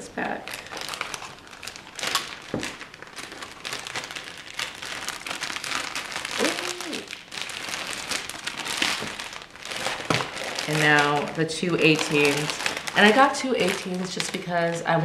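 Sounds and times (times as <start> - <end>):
plastic bag crinkling: 0.2 - 15.0.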